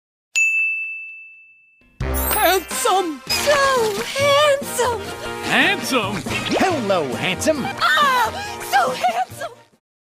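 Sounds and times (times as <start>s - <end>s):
high bell-like ding: 0.4s - 2.8s.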